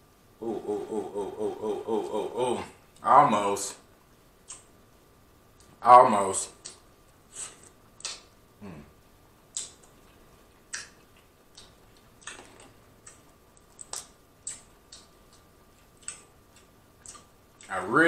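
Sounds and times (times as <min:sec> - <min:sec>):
wet mouth smacks chewing: 0:09.5 - 0:17.7.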